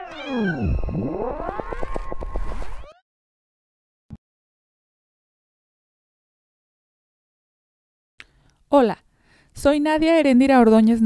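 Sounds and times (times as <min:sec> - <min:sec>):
electronic tones gliding: 0:00.0 - 0:03.0.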